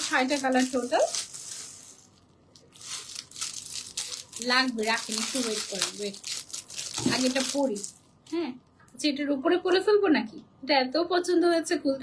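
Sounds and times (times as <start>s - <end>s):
plastic packet crinkling: 0.0s - 8.5s.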